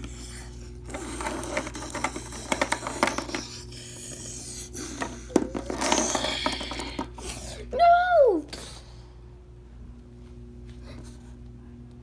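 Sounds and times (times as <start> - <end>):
plastic toys clicking and scraping: 0.8 - 7.3.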